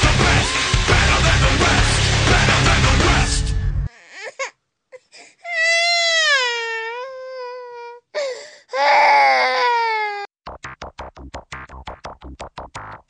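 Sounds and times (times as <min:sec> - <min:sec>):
baby crying: 0:03.9 - 0:10.3.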